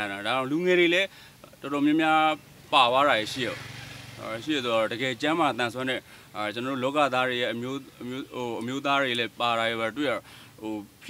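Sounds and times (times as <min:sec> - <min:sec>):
man speaking into a microphone: 0:00.0 - 0:03.6, 0:04.2 - 0:11.0
rush of background noise: 0:00.0 - 0:11.0.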